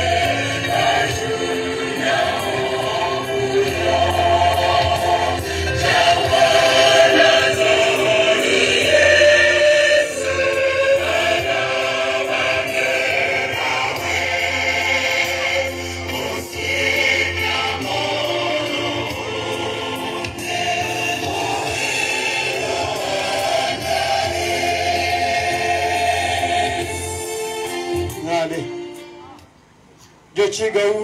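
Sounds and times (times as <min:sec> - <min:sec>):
crowd singing together: 0:00.0 - 0:28.1.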